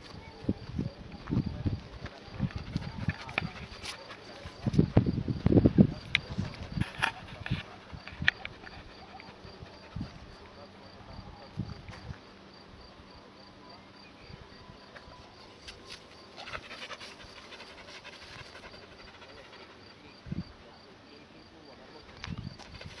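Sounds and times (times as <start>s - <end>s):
insect chirping: 0.1s - 23.0s
dog panting: 2.4s - 4.8s, 6.2s - 10.5s, 16.3s - 20.0s.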